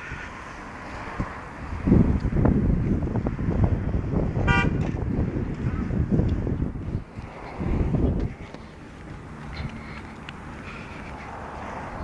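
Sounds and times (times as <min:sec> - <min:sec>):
steady low rumble: 0:00.0 - 0:12.0
car horn toot: 0:04.5 - 0:04.9.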